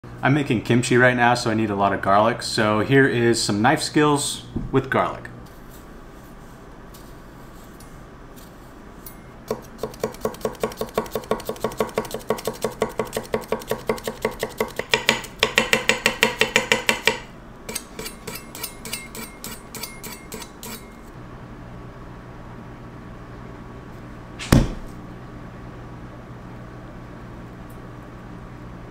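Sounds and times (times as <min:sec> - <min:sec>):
knife tapping on wooden board: 0:09.5 - 0:17.2
loud single knock: 0:24.4 - 0:24.9.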